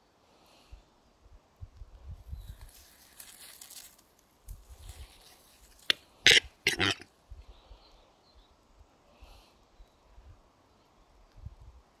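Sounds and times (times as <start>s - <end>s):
hoarse rasping bird calls: 6.1s - 7.1s.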